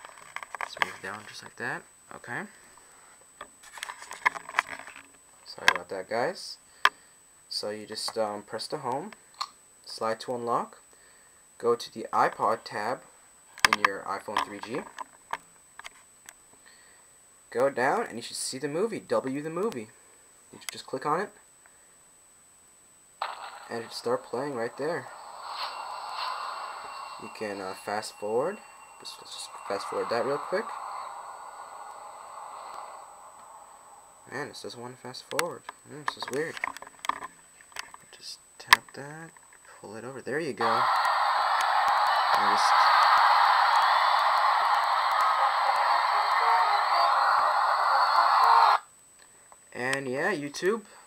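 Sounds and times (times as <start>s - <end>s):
tinny movie soundtrack from phone: 23.2s - 34.9s, 40.6s - 48.9s
small speaker whooshing noise: 23.2s - 35.0s, 40.6s - 48.8s.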